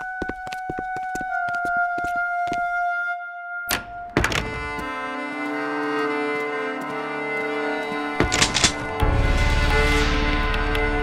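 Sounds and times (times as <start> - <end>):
music with long held notes: 0.0 - 11.0
doors thunking open: 3.7 - 4.8, 8.2 - 9.0.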